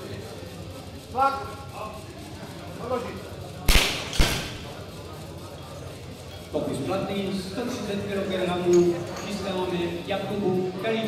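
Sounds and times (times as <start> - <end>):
loud sharp crack: 3.7 - 4.8.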